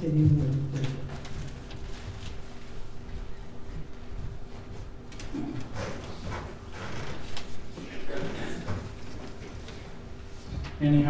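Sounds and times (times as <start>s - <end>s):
footsteps on hard floor: 0.2s - 10.8s.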